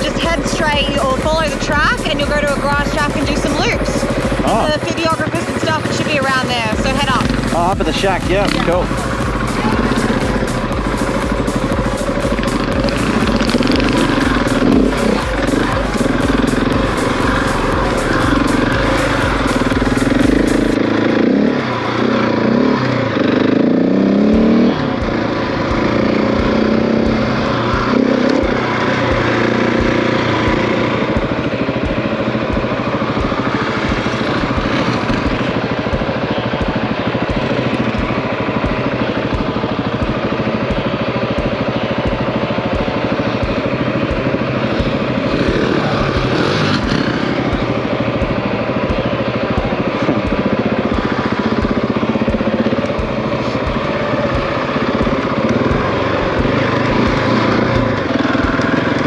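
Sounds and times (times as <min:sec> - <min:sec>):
motorcycle engine accelerating: 0:00.0 - 0:59.0.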